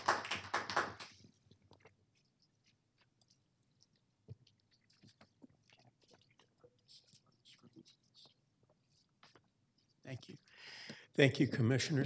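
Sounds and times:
audience applause: 0:00.0 - 0:01.1.

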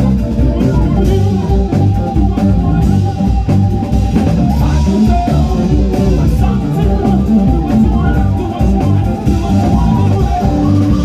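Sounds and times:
live blues-rock band playing: 0:00.0 - 0:11.0.

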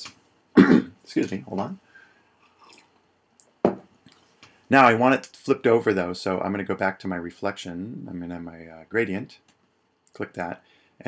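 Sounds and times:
man clearing throat: 0:00.6 - 0:01.0.

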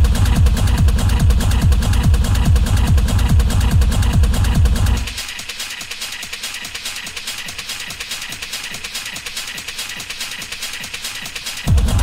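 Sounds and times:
heavy kick drum: 0:00.0 - 0:05.3, 0:11.6 - 0:12.0
fast hi-hats: 0:00.0 - 0:12.0
techno music: 0:00.0 - 0:12.0.

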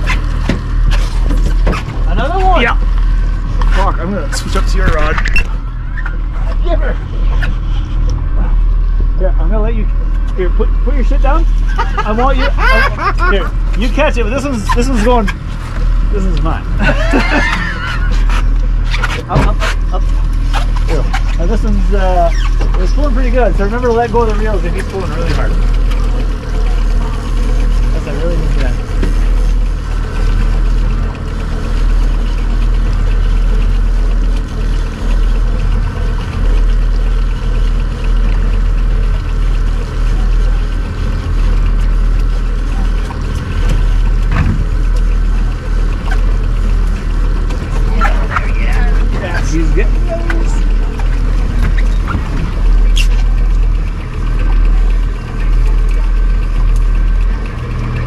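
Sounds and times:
outboard motor running: 0:00.0 - 0:58.0.

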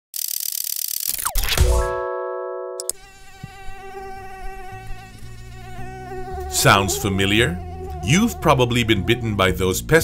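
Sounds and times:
mosquito buzzing: 0:02.8 - 0:09.6.

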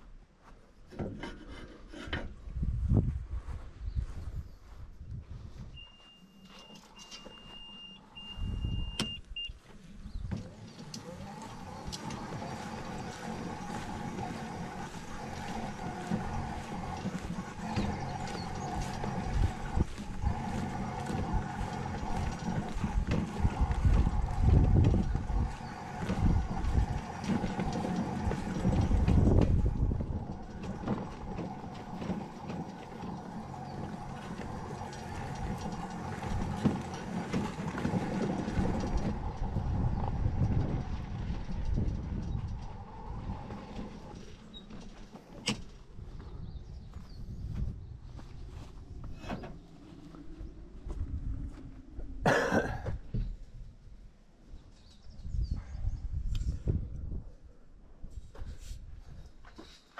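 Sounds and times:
wheels rumbling over rough ground: 0:00.9 - 0:57.2
electric motor whine: 0:09.9 - 0:45.4.

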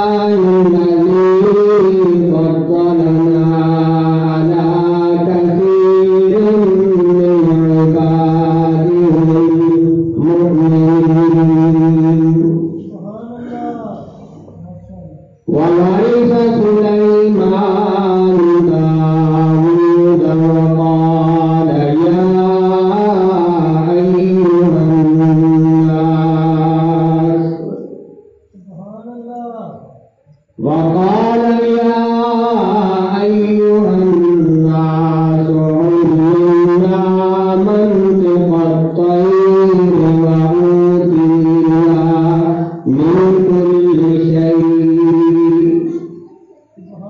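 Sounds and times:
man chanting: 0:00.0 - 0:47.0.

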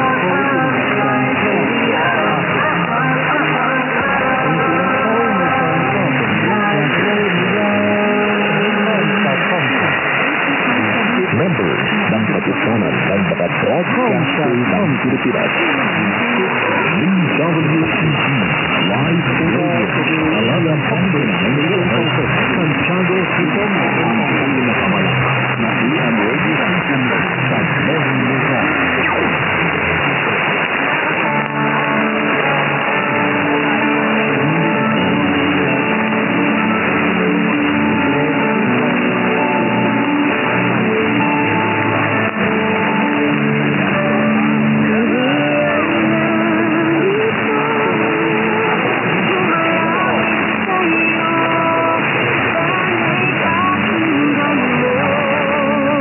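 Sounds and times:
announcer speaking over radio: 0:00.0 - 0:36.8
music with long held notes: 0:00.0 - 0:56.0
radio static and interference: 0:00.0 - 0:56.0.

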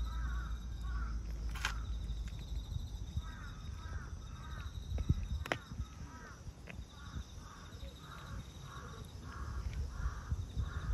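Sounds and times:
crow cawing: 0:00.0 - 0:01.9, 0:03.2 - 0:04.7, 0:05.6 - 0:10.9.

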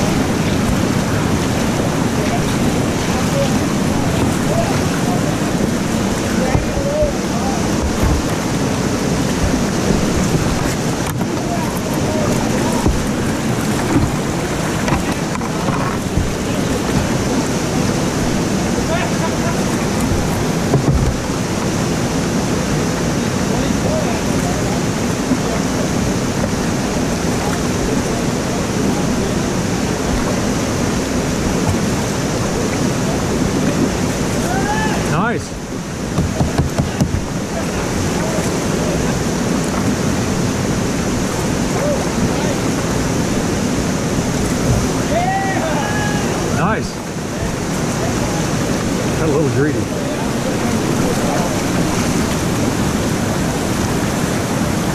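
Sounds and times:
whitewater rushing over falls: 0:00.0 - 0:54.9.

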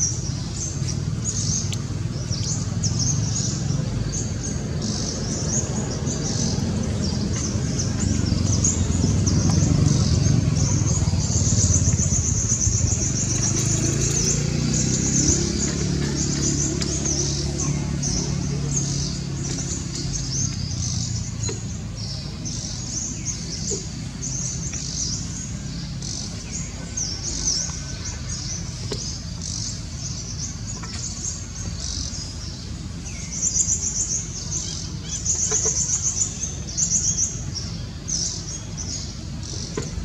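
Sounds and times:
steady low rumble: 0:00.0 - 0:13.6
birds chirping: 0:00.0 - 0:40.0.

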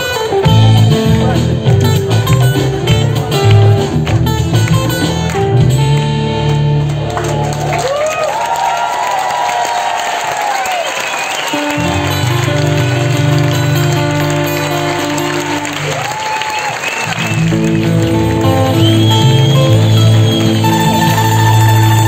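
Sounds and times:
folk-rock band playing: 0:00.0 - 0:07.9, 0:11.0 - 0:22.0.

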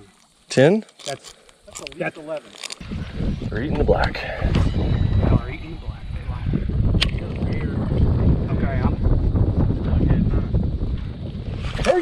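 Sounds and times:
wind buffeting microphone: 0:02.8 - 0:12.0.

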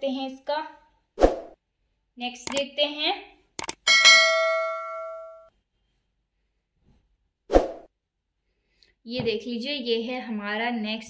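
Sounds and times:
mouse clicks: 0:03.6 - 0:03.8
bright bell ding: 0:03.9 - 0:05.5.

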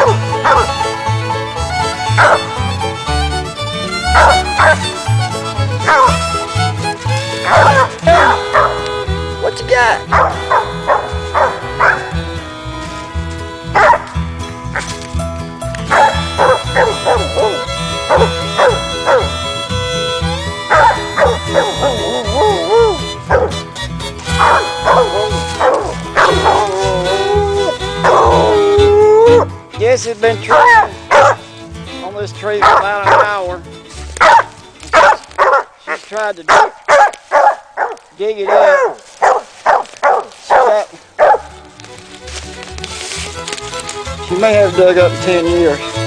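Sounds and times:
dog barking: 0:00.0 - 0:01.0, 0:02.2 - 0:02.5, 0:04.2 - 0:04.8, 0:05.8 - 0:06.2, 0:07.4 - 0:08.8, 0:09.4 - 0:12.1, 0:13.8 - 0:14.1, 0:15.9 - 0:19.3, 0:20.7 - 0:23.6, 0:24.3 - 0:26.7, 0:28.0 - 0:28.6, 0:30.5 - 0:31.4, 0:32.6 - 0:33.4, 0:34.2 - 0:41.5
fiddle music with steady beat: 0:00.0 - 0:37.0, 0:40.3 - 0:46.0.

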